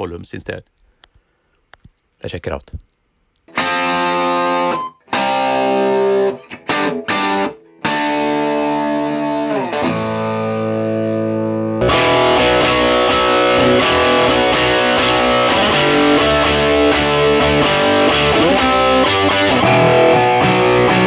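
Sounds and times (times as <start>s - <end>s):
overdriven electric guitar: 3.5s - 21.0s.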